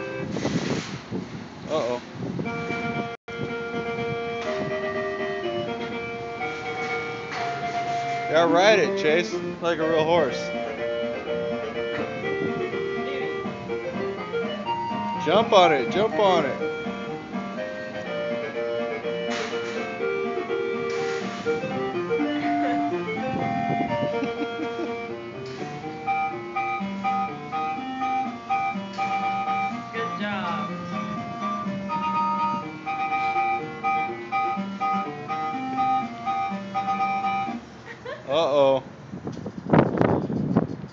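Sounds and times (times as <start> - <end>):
tinkly carousel ride tune: 2.4 - 37.8.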